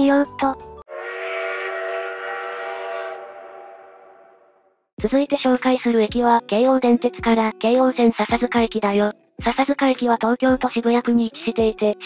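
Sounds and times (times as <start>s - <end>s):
train whistle blast: 0.9s - 4.6s.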